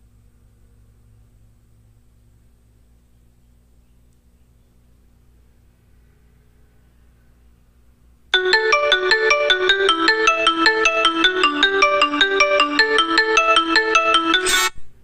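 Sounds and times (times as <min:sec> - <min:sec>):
smartphone marimba ringtone: 0:08.4 - 0:14.7.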